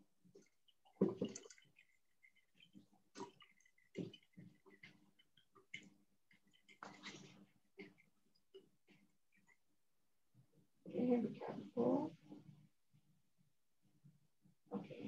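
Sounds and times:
liquid sloshing in glass flask: 0:00.1 - 0:09.8.

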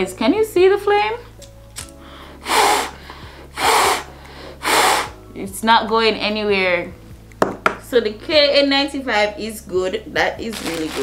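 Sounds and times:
breath blown through face mask: 0:02.0 - 0:05.2.

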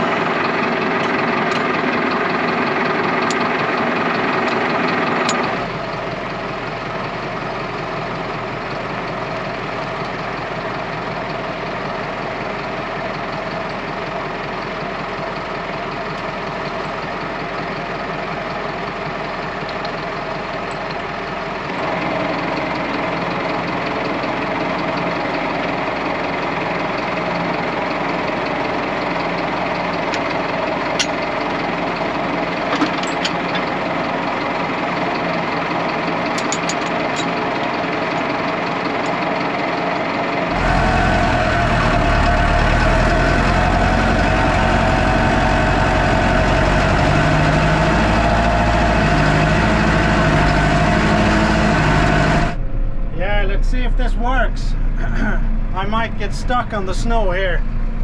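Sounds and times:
diesel tractor engine idling: 0:00.0 - 0:58.0
tractor driving: 0:00.0 - 0:58.0.

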